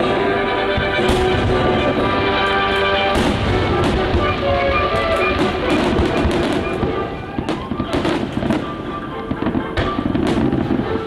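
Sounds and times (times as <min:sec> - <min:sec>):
fireworks bangs and crackles: 0:00.0 - 0:11.0
show soundtrack music: 0:00.0 - 0:11.0.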